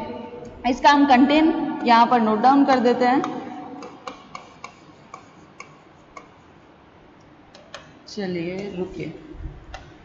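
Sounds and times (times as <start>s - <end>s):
pen clicks on writing surface: 3.8s - 6.4s.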